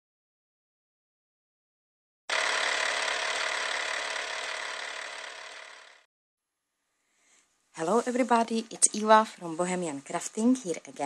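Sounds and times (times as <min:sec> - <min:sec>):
film projector rattling: 0:02.3 - 0:06.1.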